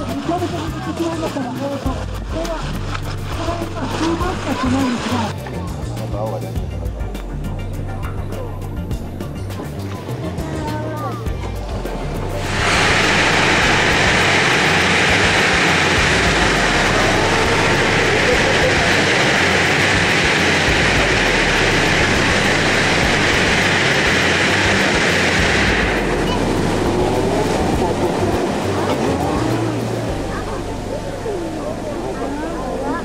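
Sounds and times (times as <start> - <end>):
loud rush of air and water: 0.0 - 5.4, 12.0 - 33.0
water rushing along hull: 0.0 - 5.4, 9.6 - 33.0.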